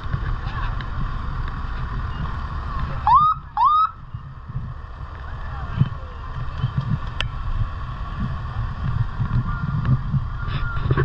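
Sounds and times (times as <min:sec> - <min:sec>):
truck engine rumble: 0:00.0 - 0:11.0
wind on microphone: 0:00.0 - 0:11.0
fire engine siren whoops: 0:03.0 - 0:04.0.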